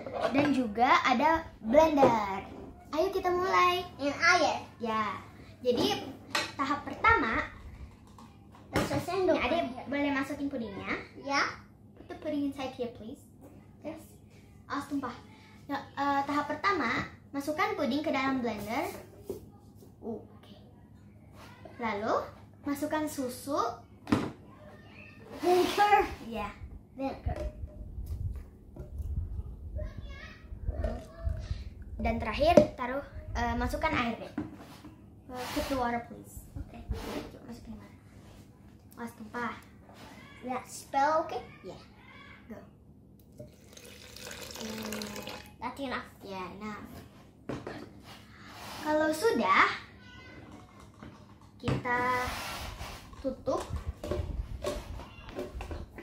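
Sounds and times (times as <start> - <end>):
child's voice: 0.2 - 27.5, 29.1 - 34.5, 38.9 - 42.7, 48.6 - 52.4, 53.2 - 55.7
milk pouring into blender jar: 43.4 - 45.6.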